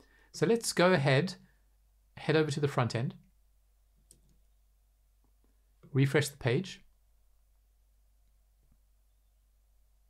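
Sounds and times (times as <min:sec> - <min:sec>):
computer mouse click: 0:04.0 - 0:04.4.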